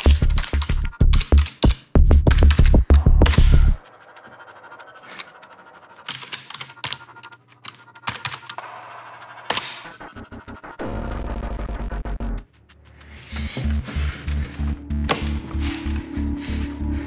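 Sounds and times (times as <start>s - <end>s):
typing on computer keyboard: 0.0s - 2.8s, 6.0s - 8.6s
film score music: 0.0s - 17.0s.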